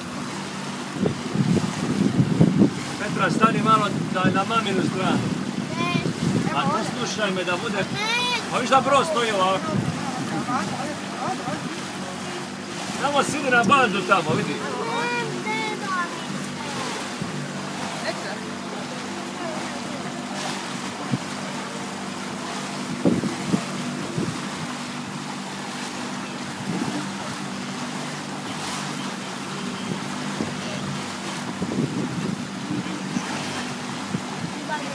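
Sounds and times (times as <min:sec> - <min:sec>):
motorboat engine running: 0:00.0 - 0:34.9
water rushing past hull: 0:00.0 - 0:34.9
wind on microphone: 0:00.9 - 0:04.4, 0:05.1 - 0:07.0, 0:09.6 - 0:10.8, 0:22.8 - 0:24.8, 0:26.5 - 0:27.2, 0:31.4 - 0:34.8.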